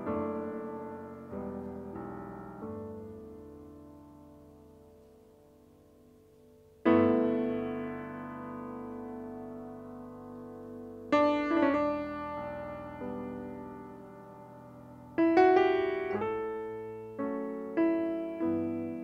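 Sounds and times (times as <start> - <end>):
grand piano slow chords: 0.0 - 19.0.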